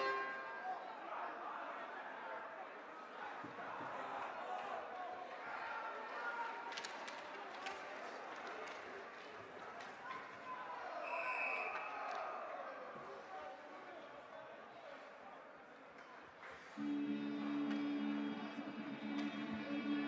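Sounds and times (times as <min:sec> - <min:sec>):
crowd chatter: 0:00.0 - 0:20.0
stick and puck clacks: 0:06.7 - 0:10.4
referee's whistle blast: 0:16.8 - 0:20.0.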